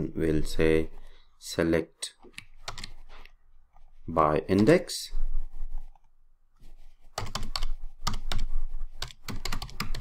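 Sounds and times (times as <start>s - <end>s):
typing on computer keyboard: 2.3s - 3.0s, 7.2s - 10.0s.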